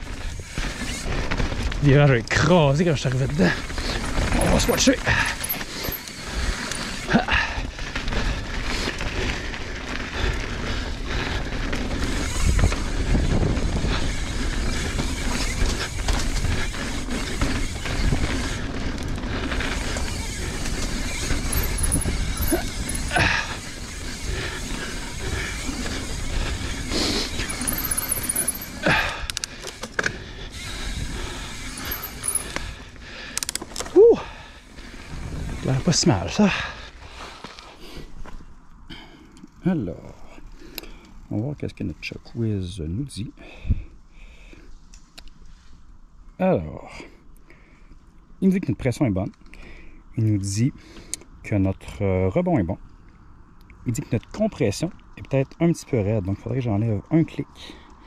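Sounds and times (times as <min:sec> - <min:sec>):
bike tyre and wind rush: 0:00.0 - 0:42.7, 0:43.3 - 0:48.4.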